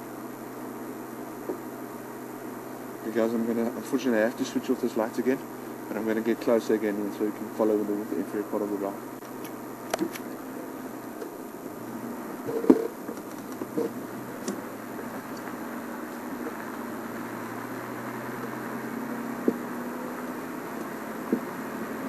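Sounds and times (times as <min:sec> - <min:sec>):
vehicle engine running: 0:00.0 - 0:22.0
vehicle knocks and bumps: 0:19.4 - 0:19.7, 0:21.2 - 0:21.6.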